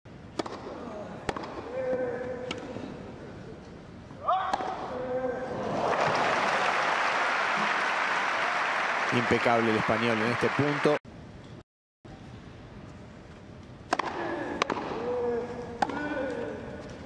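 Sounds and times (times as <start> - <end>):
tennis ball struck by rackets: 0.3 - 2.7, 13.9 - 15.2, 15.8 - 16.4
crowd applause: 5.6 - 11.0.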